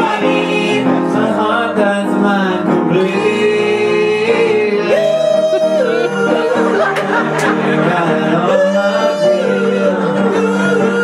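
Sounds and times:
instrumental accompaniment: 0:00.0 - 0:11.0
person singing pop christmas song: 0:00.0 - 0:11.0.

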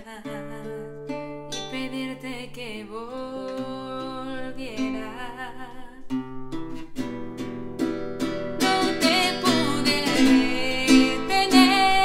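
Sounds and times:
woman singing with vibrato: 0:00.0 - 0:06.4, 0:08.5 - 0:12.0
classical guitar plucked: 0:00.0 - 0:12.0.

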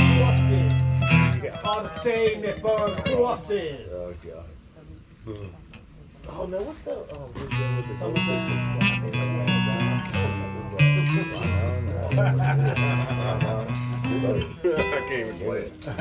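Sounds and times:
acoustic guitar riff: 0:00.0 - 0:03.5, 0:07.4 - 0:15.9
person laughing: 0:12.0 - 0:13.6, 0:15.7 - 0:16.0.

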